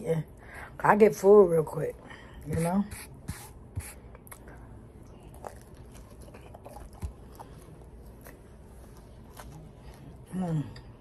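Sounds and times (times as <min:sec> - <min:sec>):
chewing and lip smacking: 0:04.2 - 0:10.9.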